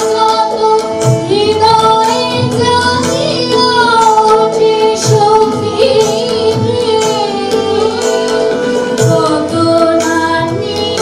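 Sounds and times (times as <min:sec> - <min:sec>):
harmonium chords: 0:00.0 - 0:11.0
tabla strokes: 0:00.0 - 0:11.0
violin: 0:00.0 - 0:11.0
women singing: 0:00.0 - 0:11.0.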